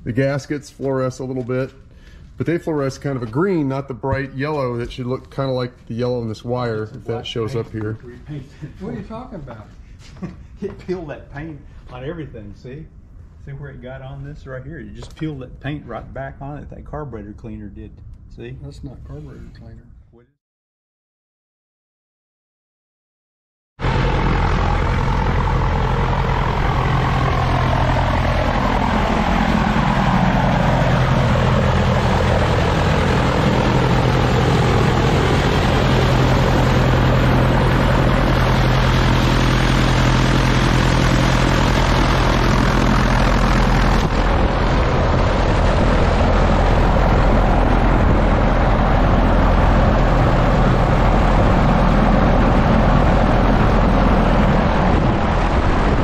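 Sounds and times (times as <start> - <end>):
aircraft piston engine and propeller: 23.8 - 56.0.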